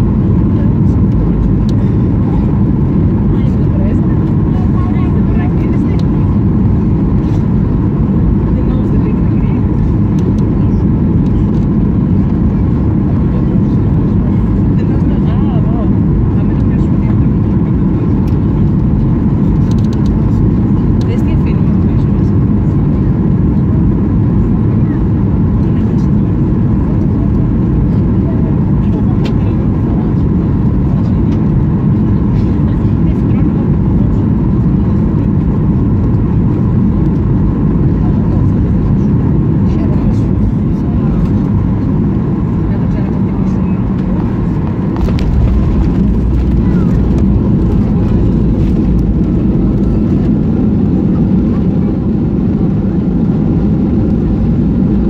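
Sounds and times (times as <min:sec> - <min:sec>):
airplane cabin engine drone: 0:00.0 - 0:55.0.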